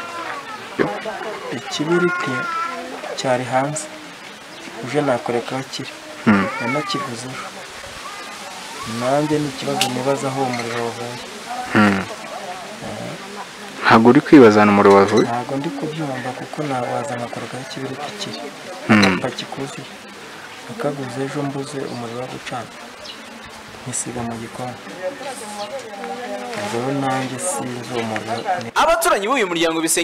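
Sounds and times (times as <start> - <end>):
man speaking: 0.8 - 2.5, 4.8 - 7.5, 8.9 - 12.1, 13.8 - 19.9, 23.8 - 24.8, 26.6 - 30.0
man talking into a microphone: 0.8 - 2.6, 4.8 - 7.5, 8.9 - 12.1, 13.8 - 19.9, 23.8 - 24.8, 26.5 - 30.0.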